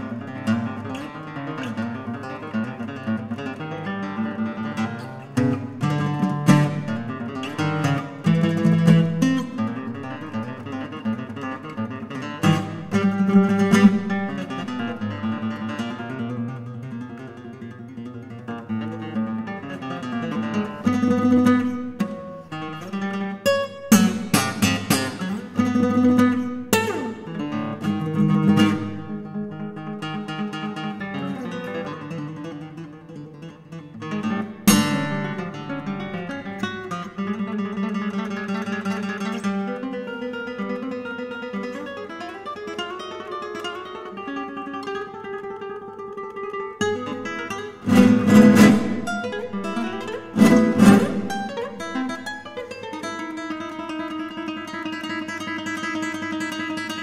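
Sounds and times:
solo classical guitar: 0.0 - 57.0
strummed guitar chords: 0.0 - 57.0.

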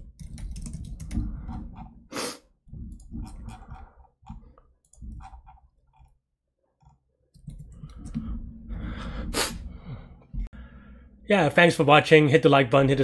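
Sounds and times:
keyboard and mouse clicks: 0.0 - 1.9, 6.8 - 8.2.

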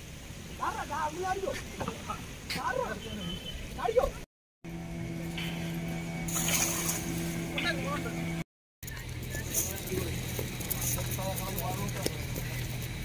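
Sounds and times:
engine humming: 4.7 - 13.0.

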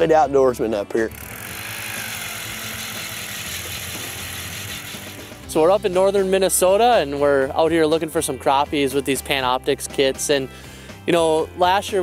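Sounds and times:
ice auger boring through ice: 1.1 - 5.7.

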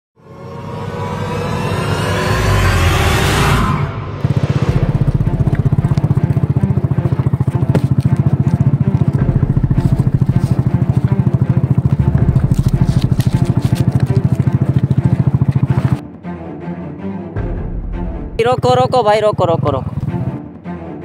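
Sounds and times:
rising swell effect: 0.2 - 6.9
small motorcycle engine running: 4.2 - 16.0, 18.5 - 20.4.

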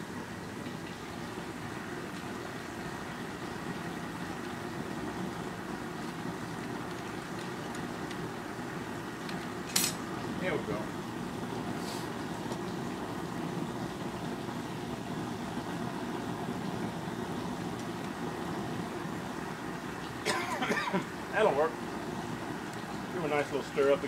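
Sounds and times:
gas burner rushing: 0.0 - 24.0.

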